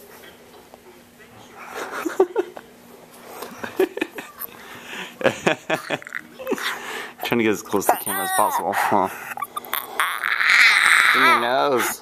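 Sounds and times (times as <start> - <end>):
child making animal noises: 7.9 - 8.8, 9.4 - 11.6.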